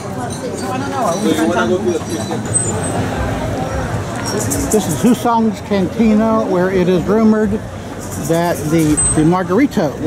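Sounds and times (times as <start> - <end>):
people talking: 0.0 - 10.0
street traffic noise: 0.0 - 10.0.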